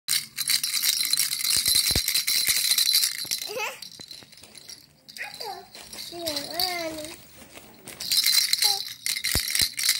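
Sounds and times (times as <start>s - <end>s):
plastic baby rattle shaken: 0.1s - 7.2s, 7.8s - 9.9s.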